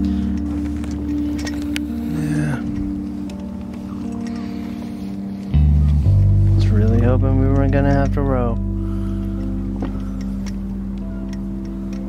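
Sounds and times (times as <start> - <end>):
boat engine running: 0.0 - 12.0.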